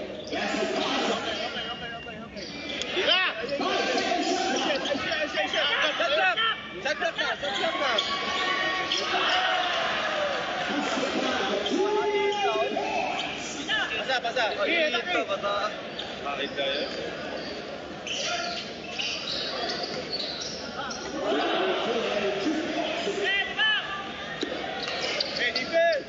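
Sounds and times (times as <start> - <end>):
crowd voices and shouts: 0.0 - 26.0
basketball play on court: 7.3 - 14.0.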